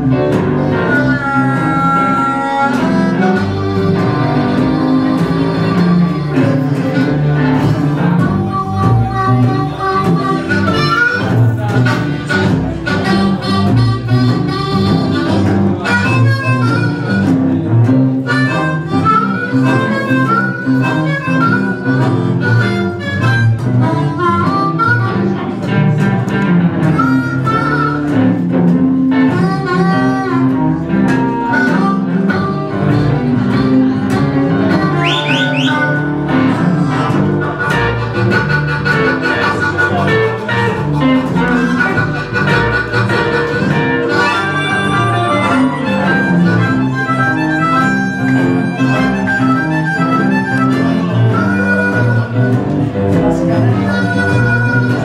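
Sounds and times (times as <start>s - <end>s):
blues band playing: 0.0s - 55.0s
harmonica wailing and bending notes: 0.0s - 55.0s.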